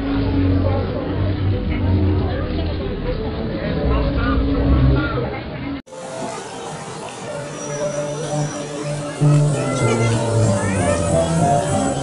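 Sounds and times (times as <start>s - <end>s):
low rumble: 0.0s - 5.6s
outdoor crowd voices: 0.0s - 12.0s.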